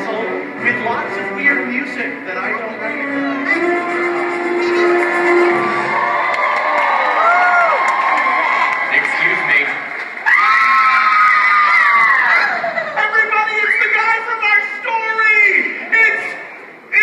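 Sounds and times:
audience cheering and shouting: 4.0 - 16.4.

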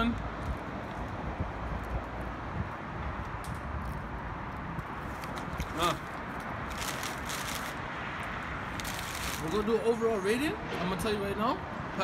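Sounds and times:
wind buffeting microphone: 0.2 - 7.5.

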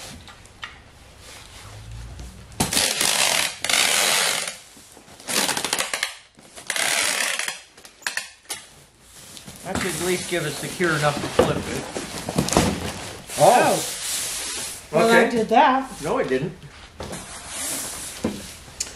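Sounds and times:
packing tape rasping off dispenser: 2.6 - 4.6, 5.2 - 8.6.

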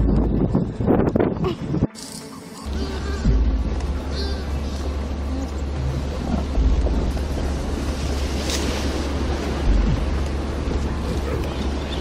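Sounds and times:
wind buffeting microphone: 0.0 - 2.0, 2.7 - 12.0.

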